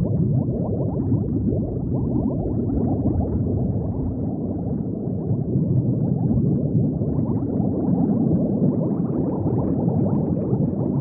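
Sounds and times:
underwater bubbling: 0.0 - 11.0.

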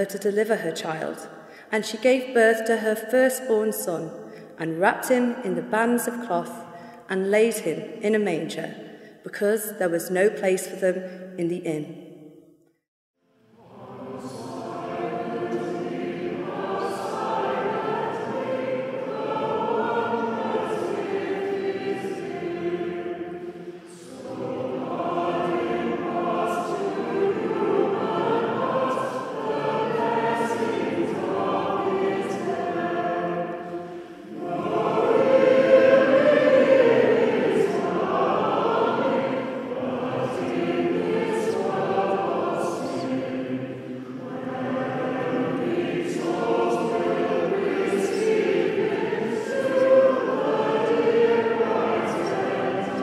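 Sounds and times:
choir singing a carol: 13.4 - 53.0.

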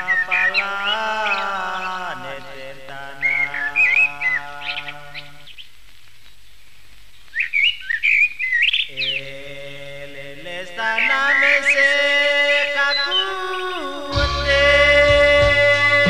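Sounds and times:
birds chirping: 0.0 - 16.0
instrumental chord: 14.1 - 16.0.

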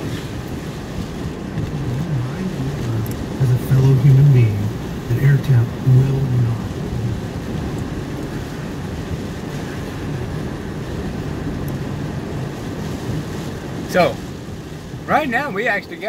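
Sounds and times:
vehicle engine running: 0.0 - 14.0
tyres rolling on wet pavement: 0.0 - 16.0.

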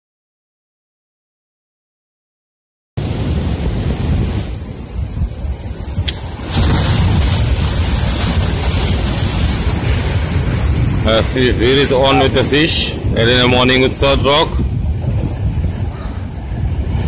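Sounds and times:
surf breaking on rocky shore: 3.0 - 17.0
wind buffeting microphone: 3.0 - 17.0.

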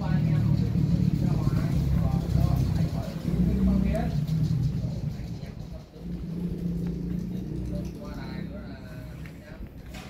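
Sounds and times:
low engine rumble: 0.0 - 10.0
people talking: 0.0 - 10.0.

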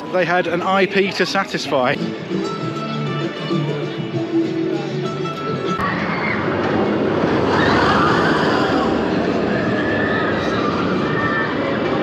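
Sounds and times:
roller coaster rumbling on track: 5.8 - 12.0.

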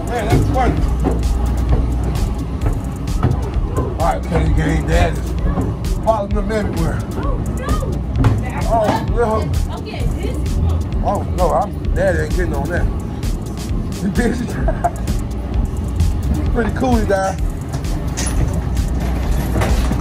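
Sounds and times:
voices calling out: 0.0 - 13.2
background music: 0.0 - 20.0.

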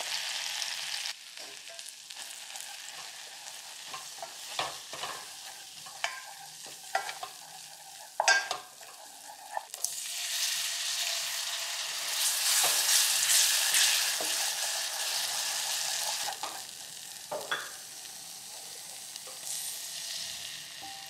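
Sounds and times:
roux sizzling: 0.0 - 21.0
wooden spatula scraping a pot: 1.8 - 9.8.

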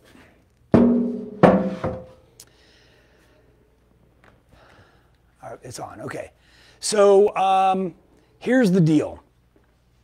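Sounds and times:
hollow metal thunks: 0.8 - 2.2.

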